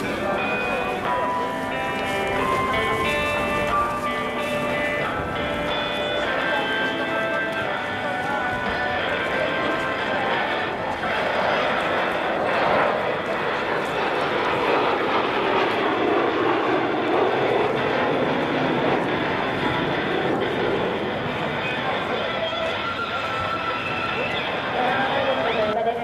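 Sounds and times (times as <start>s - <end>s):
jet engine roar: 0.0s - 26.0s.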